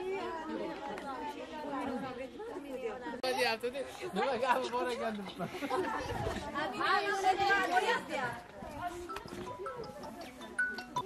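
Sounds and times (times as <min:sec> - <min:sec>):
women chattering: 0:00.0 - 0:11.0.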